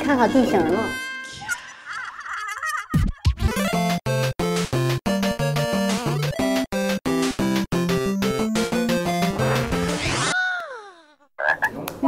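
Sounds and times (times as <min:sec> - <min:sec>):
background music: 0:00.0 - 0:10.3
comic descending sound effect: 0:09.2 - 0:10.5.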